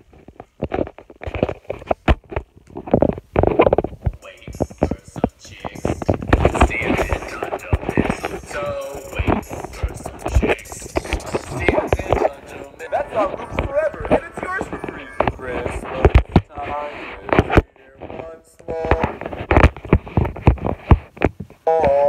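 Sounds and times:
person singing over music: 0:04.2 - 0:17.3.

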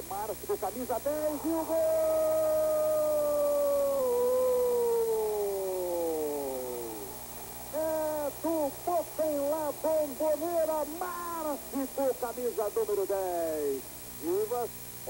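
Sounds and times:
man talking quickly: 0:00.1 - 0:02.1, 0:07.8 - 0:14.8
commentator's drawn-out goal call: 0:07.7 - 0:14.7.

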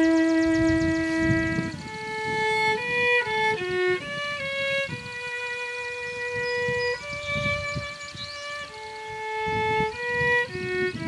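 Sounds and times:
violin playing slow melody: 0:00.0 - 0:11.0.

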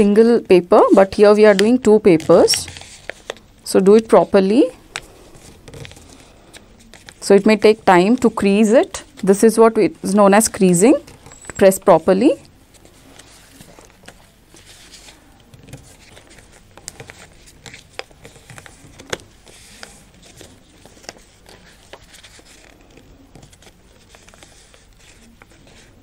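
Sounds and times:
paper rustling: 0:01.1 - 0:09.4, 0:10.4 - 0:26.0
paper crinkles and clicks: 0:01.4 - 0:04.2, 0:04.9 - 0:09.4, 0:12.7 - 0:26.0.

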